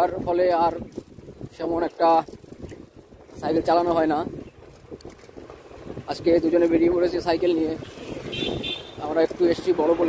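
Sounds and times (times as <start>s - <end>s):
bicycle road rumble: 0.0s - 10.0s
wind rumbling on microphone: 0.0s - 10.0s
person speaking: 9.0s - 10.0s.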